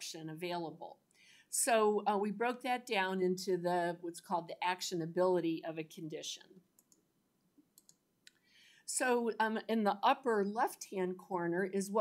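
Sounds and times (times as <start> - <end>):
faint sharp clicks: 6.8 - 7.0, 7.7 - 8.4.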